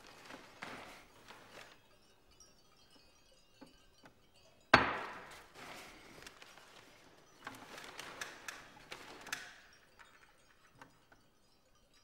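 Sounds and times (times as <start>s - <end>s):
newspaper rustling: 0.0s - 1.8s, 5.1s - 9.3s.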